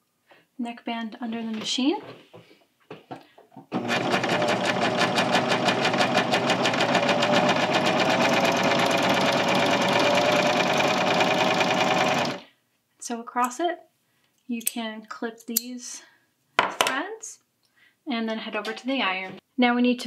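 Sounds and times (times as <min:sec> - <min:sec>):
serger sewing machine running: 0:03.7 - 0:12.4.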